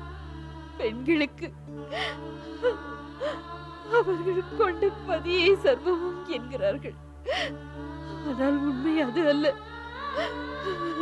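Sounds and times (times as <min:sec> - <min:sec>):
background music: 0:00.0 - 0:11.0
woman crying and sobbing: 0:00.8 - 0:11.0.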